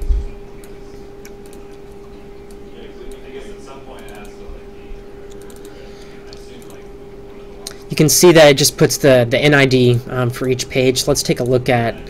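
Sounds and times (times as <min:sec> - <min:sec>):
steady hum: 0:00.0 - 0:12.0
computer mouse clicks: 0:00.6 - 0:03.2, 0:04.0 - 0:04.4, 0:05.3 - 0:06.8.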